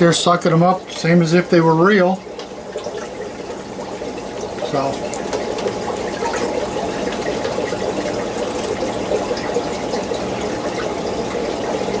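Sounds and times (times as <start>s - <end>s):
aquarium water trickling: 0.0s - 12.0s.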